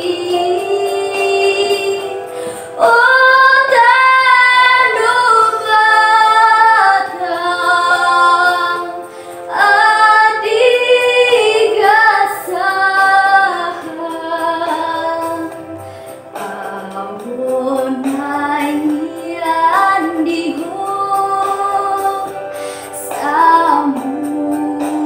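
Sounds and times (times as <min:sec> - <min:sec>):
backing track: 0:00.0 - 0:25.0
singer breath: 0:02.2 - 0:02.8, 0:09.0 - 0:09.5, 0:15.8 - 0:16.3, 0:22.5 - 0:23.0.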